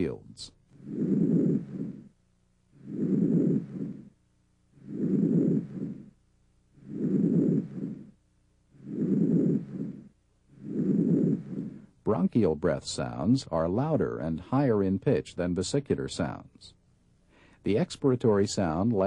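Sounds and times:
soft breath sounds: 0.7s - 12.0s, 17.2s - 17.7s.

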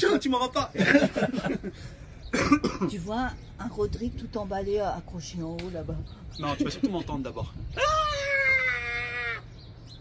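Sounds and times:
person coughing: 2.3s - 2.9s.

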